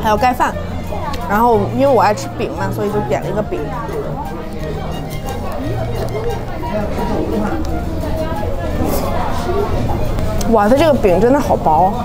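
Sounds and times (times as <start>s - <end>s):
background music: 0.0s - 12.0s
indistinct chatter: 0.0s - 12.0s.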